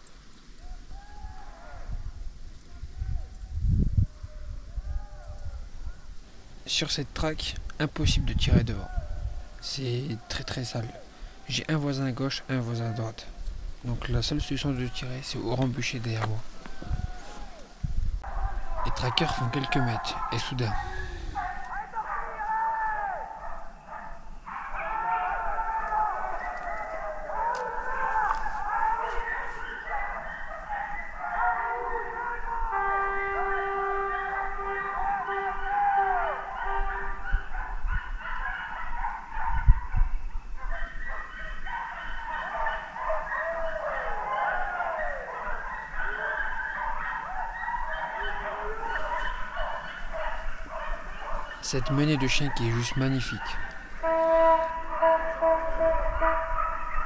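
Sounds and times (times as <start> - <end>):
hounds baying and howling: 14.0 - 57.0.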